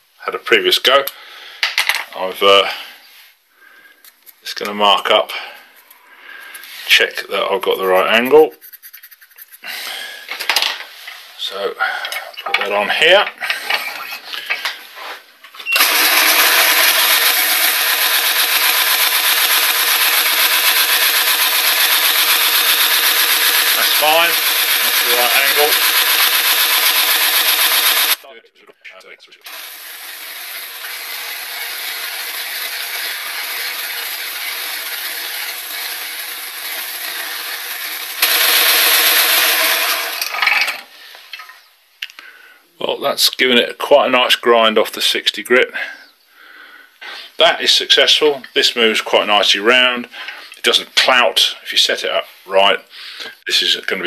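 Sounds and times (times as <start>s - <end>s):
metal scraping and rubbing: 5.7s - 9.7s
belt sharpener grinding hiss: 15.8s - 28.2s, 29.5s - 40.3s.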